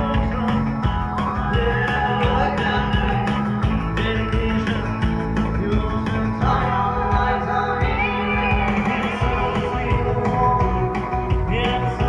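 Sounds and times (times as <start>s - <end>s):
person singing: 0.0s - 12.0s
steady drum beat: 0.0s - 12.0s.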